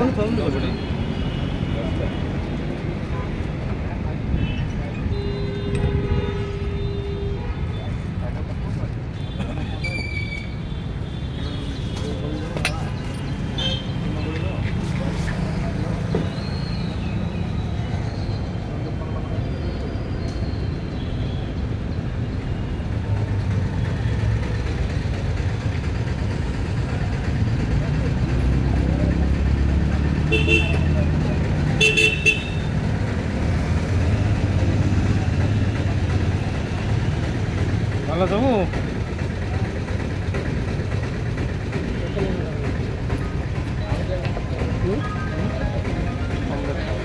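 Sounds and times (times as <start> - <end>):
street traffic: 0.0 - 47.0
vehicle horn tooting: 30.3 - 30.9, 31.8 - 32.7.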